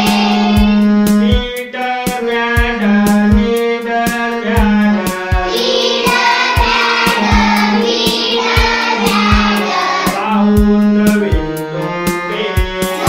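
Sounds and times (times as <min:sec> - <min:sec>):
children singing in unison: 0:00.0 - 0:00.9, 0:05.4 - 0:10.6
instrumental accompaniment with beat: 0:00.0 - 0:13.0.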